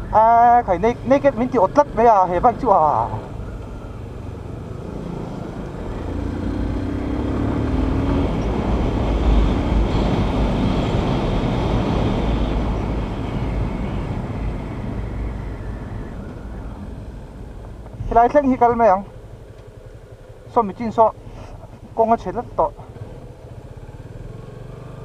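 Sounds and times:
motorcycle engine running: 0:00.2 - 0:12.8, 0:15.5 - 0:25.0
wind rumble on microphone: 0:08.2 - 0:18.3.

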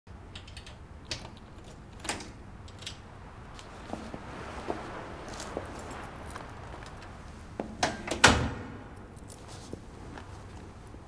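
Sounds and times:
low steady hum: 0:00.1 - 0:11.0
small irregular clicks: 0:00.3 - 0:03.0.

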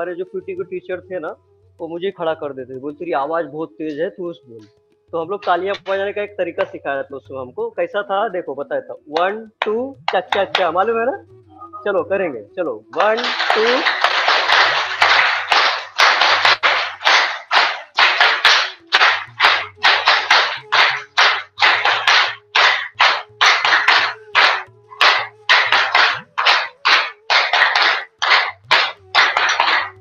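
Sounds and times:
hands clapping rhythmically: 0:02.7 - 0:07.0, 0:09.1 - 0:11.2, 0:11.9 - 0:30.0.

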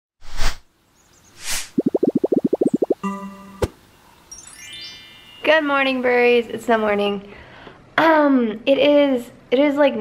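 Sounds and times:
whooshes: 0:01.4 - 0:03.0
cartoon pops: 0:01.4 - 0:03.8
held chime-like tone: 0:03.0 - 0:03.6, 0:04.3 - 0:06.2.

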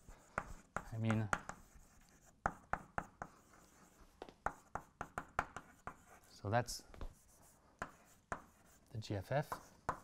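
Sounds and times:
chalk writing on a blackboard: 0:00.0 - 0:10.0.

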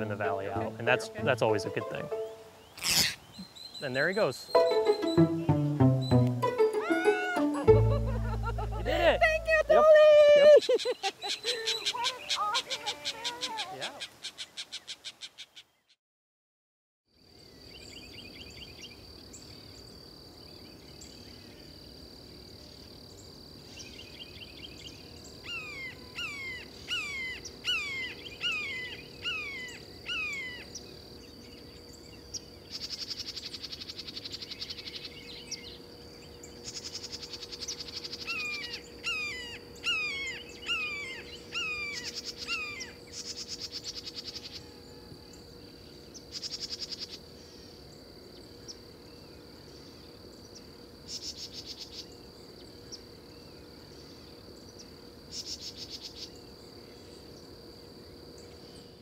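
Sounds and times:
insects droning: 0:00.0 - 0:05.3, 0:07.0 - 0:15.4, 0:17.2 - 0:59.0
insects fast-pulsing trills: 0:00.0 - 0:05.3, 0:06.8 - 0:14.1, 0:17.2 - 0:59.0.

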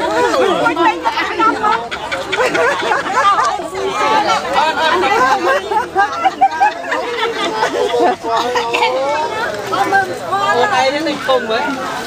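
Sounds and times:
women chatting: 0:00.0 - 0:12.0.

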